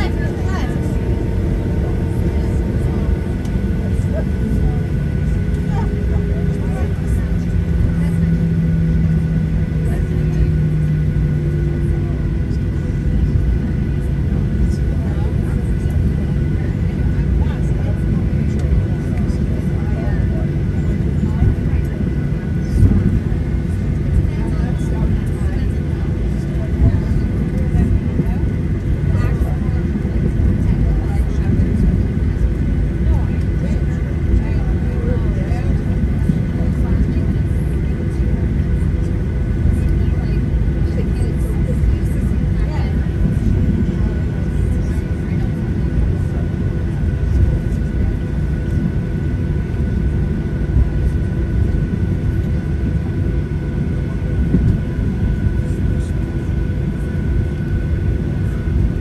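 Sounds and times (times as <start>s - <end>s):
jet engines low rumble: 0.0s - 59.0s.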